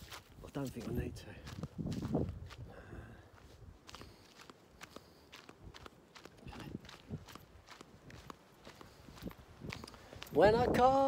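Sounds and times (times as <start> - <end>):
footsteps on dry grass: 0.0 - 11.0.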